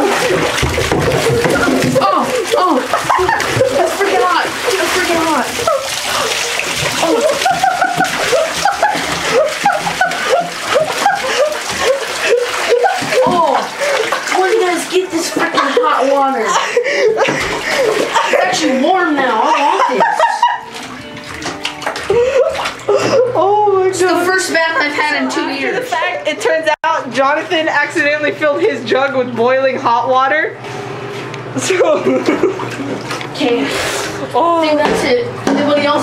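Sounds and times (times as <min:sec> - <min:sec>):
water pouring from jugs: 0:00.0 - 0:24.3
water splashing in bathtub: 0:00.0 - 0:36.0
music: 0:20.6 - 0:24.8.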